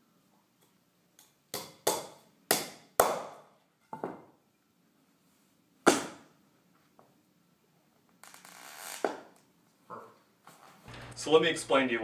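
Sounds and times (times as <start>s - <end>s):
hammer hitting nail into wood: 1.5s - 3.4s.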